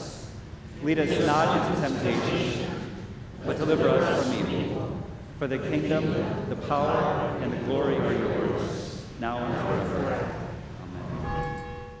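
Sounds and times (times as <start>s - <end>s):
bell ringing: 11.1s - 12.0s.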